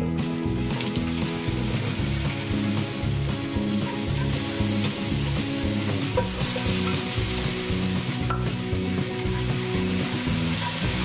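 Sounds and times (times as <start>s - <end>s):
sausages sizzling in a frying pan: 0.0s - 11.0s.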